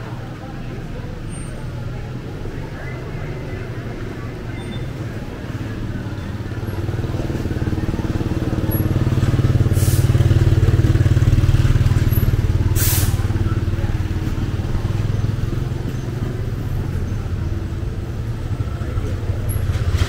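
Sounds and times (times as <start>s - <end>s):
vehicle engine droning: 0.0s - 20.0s.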